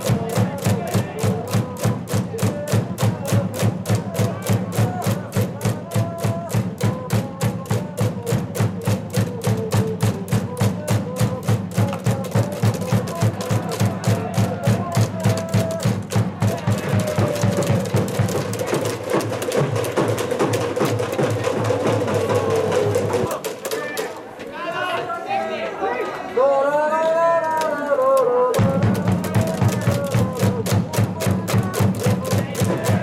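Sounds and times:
crowd chanting: 0.0 - 6.9, 11.9 - 33.0
fast rhythmic clapping: 0.0 - 24.2, 27.4 - 33.0.

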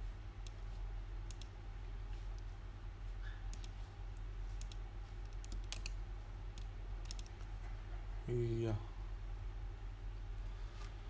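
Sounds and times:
low electrical hum: 0.0 - 11.0
computer mouse clicking: 1.3 - 1.5, 3.5 - 6.0, 6.6 - 7.5.

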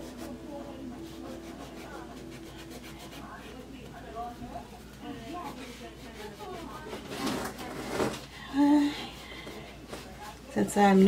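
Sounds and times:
wipe rubbing on chalkboard: 1.0 - 3.6, 4.2 - 7.1.

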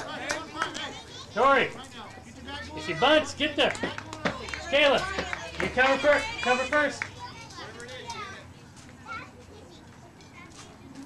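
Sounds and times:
girls calling and chattering: 0.0 - 11.0.

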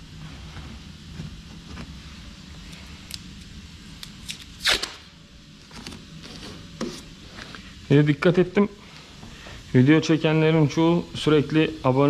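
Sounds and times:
air handling hum: 0.0 - 12.0.

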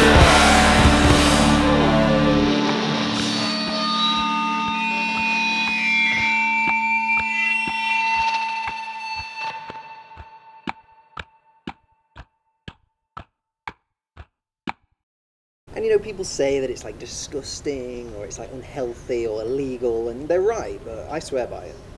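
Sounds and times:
trailer music sustained tones: 0.0 - 11.8.

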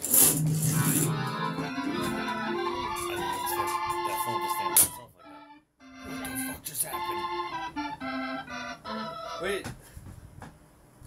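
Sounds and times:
keyboard playing organ sound: 0.2 - 9.7.

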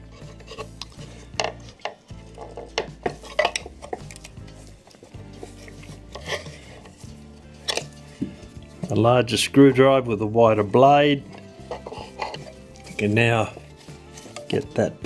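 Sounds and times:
screwdriver scraping wood: 0.0 - 9.0, 11.2 - 14.7
faint background music: 0.0 - 15.0.

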